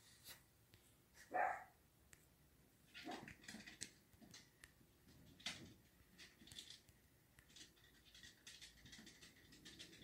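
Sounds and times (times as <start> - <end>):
puppy barking: 1.3 - 1.8.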